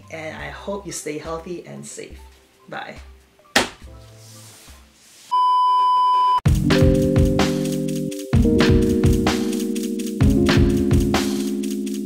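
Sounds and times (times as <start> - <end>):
music with drum beat: 6.5 - 12.0.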